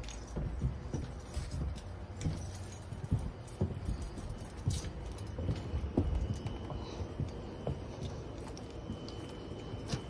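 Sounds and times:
footsteps on wooden floor: 0.0s - 10.0s.

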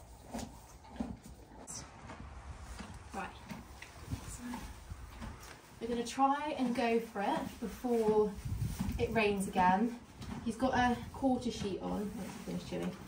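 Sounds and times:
low steady rumble: 0.0s - 12.8s
horse tack knocks and rustles: 0.0s - 13.0s.

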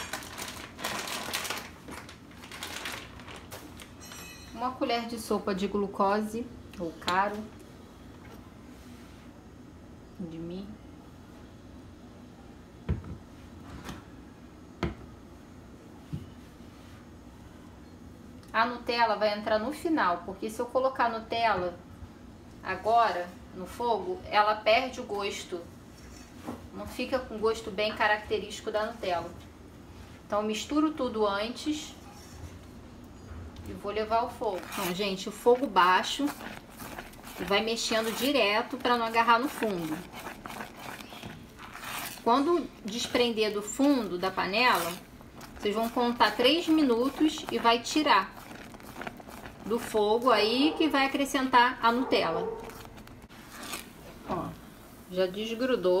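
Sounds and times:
spatula scraping a pan: 34.5s - 50.1s.

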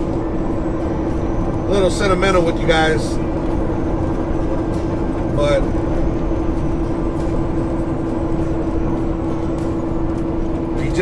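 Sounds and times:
constant hum: 0.0s - 11.0s
road noise: 0.0s - 11.0s
truck engine: 0.0s - 11.0s.

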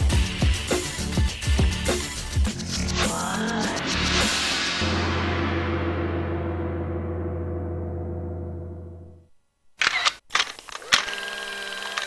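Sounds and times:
gong ringing: 4.8s - 9.2s.

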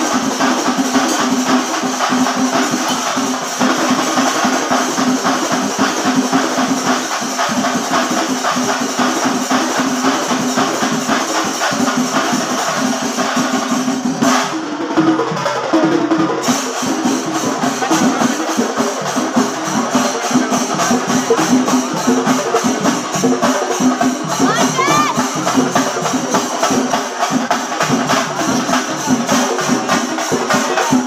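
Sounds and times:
cymbals clashing: 0.0s - 14.7s, 16.4s - 31.0s
fast dense drumming: 0.0s - 31.0s.

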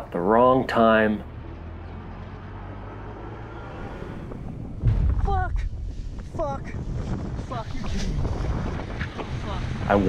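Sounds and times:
wind rumble on microphone: 3.7s - 10.0s.

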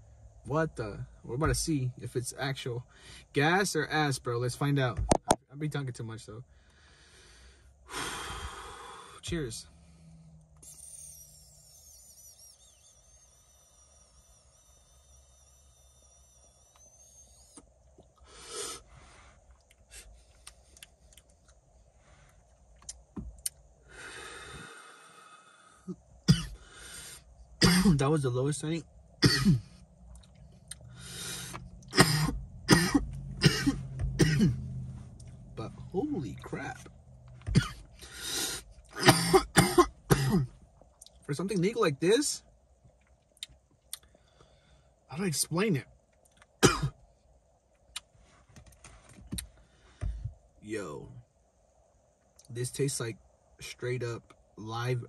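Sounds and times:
person breathing out: 6.5s - 10.4s, 23.8s - 26.0s, 26.6s - 27.3s, 30.9s - 31.6s
vape hiss with high whistle: 8.0s - 19.2s, 30.9s - 31.7s
man coughing: 26.3s - 26.6s, 27.6s - 28.0s, 29.2s - 29.7s, 31.9s - 34.6s, 37.5s - 37.8s, 39.0s - 40.5s, 46.6s - 46.9s.

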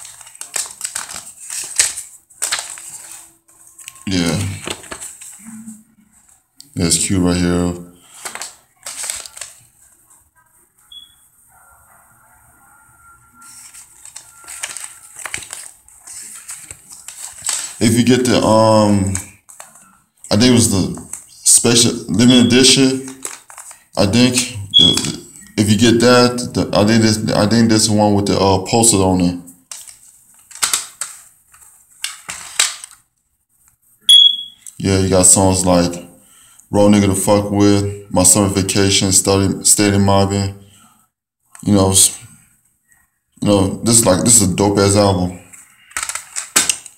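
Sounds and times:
paper booklet rustling: 0.0s - 5.5s, 8.0s - 10.3s, 13.4s - 25.8s, 29.6s - 33.8s, 43.8s - 46.9s.

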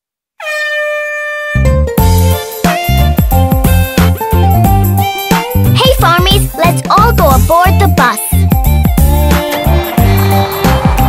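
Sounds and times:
cartoon bus horn honk: 0.4s - 1.9s
upbeat children's music: 1.9s - 11.0s.

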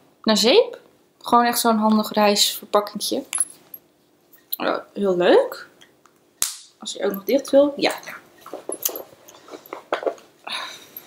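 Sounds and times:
small items clicking and knocking: 8.4s - 10.2s.

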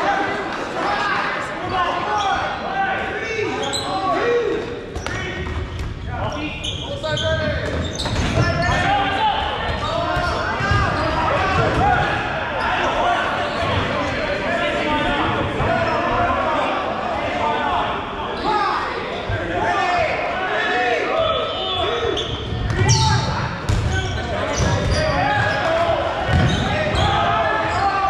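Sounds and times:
players shouting: 8.2s - 28.0s
dodgeballs smacking gym floor: 26.2s - 27.0s.

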